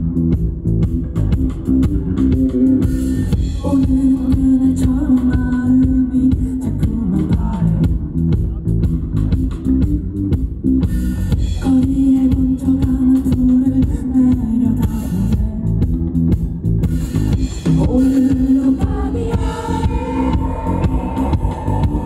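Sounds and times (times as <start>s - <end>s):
bass guitar: 0.0s - 22.0s
drum kit: 0.0s - 22.0s
electric guitars: 15.1s - 22.0s.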